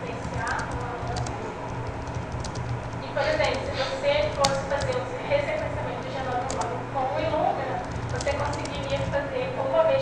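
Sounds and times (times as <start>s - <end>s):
woman lecturing: 0.0s - 1.6s, 3.0s - 10.0s
computer keyboard typing: 0.1s - 9.2s.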